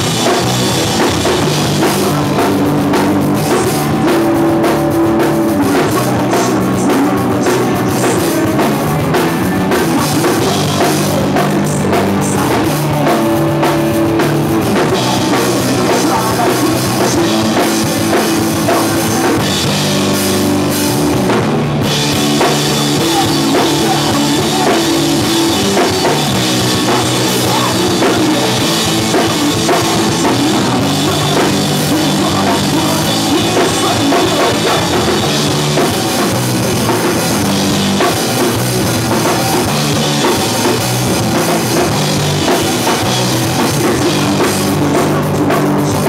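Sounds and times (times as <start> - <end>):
drum kit: 0.0 - 46.0
electric bass: 0.0 - 46.0
electric guitar: 0.0 - 46.0
person singing: 0.0 - 46.0.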